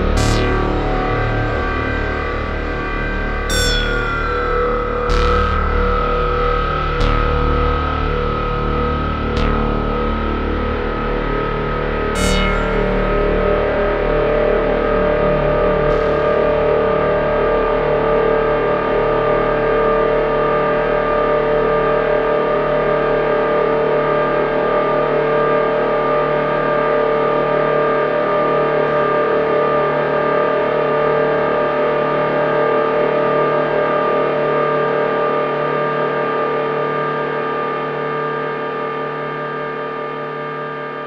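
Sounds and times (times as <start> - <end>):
synthesizer ambient drone: 0.0 - 21.0.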